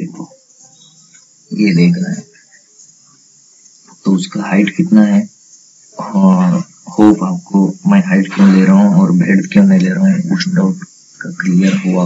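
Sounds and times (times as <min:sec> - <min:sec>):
high-pitched hiss: 0:00.0 - 0:12.0
man lecturing: 0:01.5 - 0:02.4, 0:03.9 - 0:05.3, 0:06.0 - 0:12.0.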